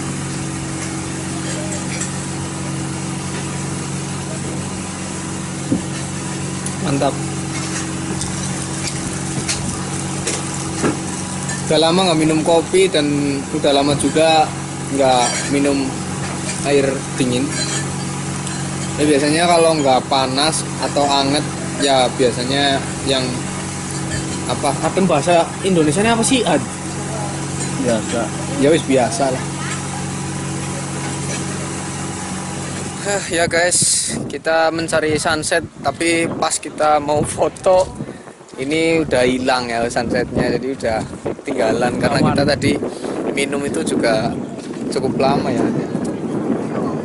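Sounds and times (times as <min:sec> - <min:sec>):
low mechanical hum: 0:00.0 - 0:47.0.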